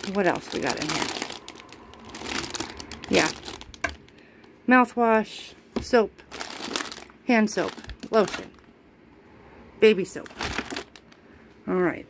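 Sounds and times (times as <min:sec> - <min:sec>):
plastic wrappers crinkling: 0:00.0 - 0:04.3, 0:06.2 - 0:08.7, 0:10.1 - 0:11.2.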